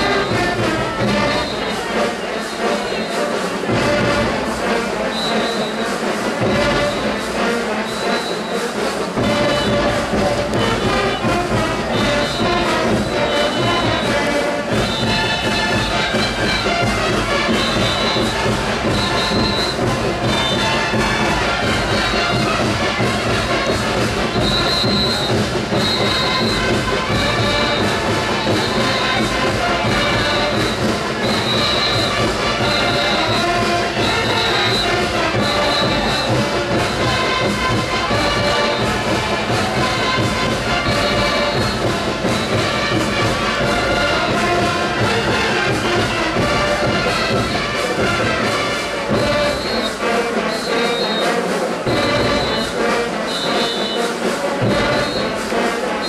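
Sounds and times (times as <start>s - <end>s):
brass band playing dance tune: 0.0s - 56.0s.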